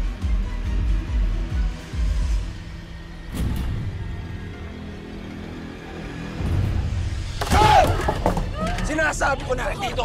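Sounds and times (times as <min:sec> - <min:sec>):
suspenseful dramatic score: 0:00.1 - 0:10.0.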